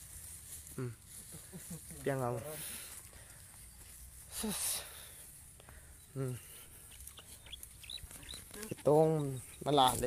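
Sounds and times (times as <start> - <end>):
birds chirping: 0.9 - 10.0.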